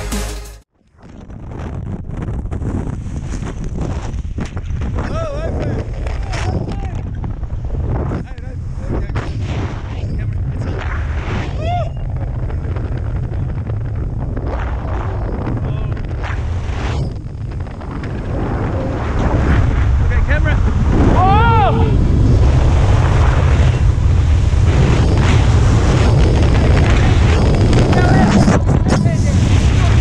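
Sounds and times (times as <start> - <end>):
wind buffeting microphone: 1.1 - 30.0
people shouting: 21.1 - 22.0.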